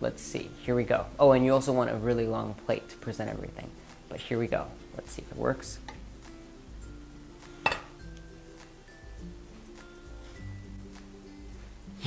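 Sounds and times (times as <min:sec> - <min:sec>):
soft background music: 0:00.0 - 0:12.0
glass bowl clinking on plate: 0:07.6 - 0:08.0.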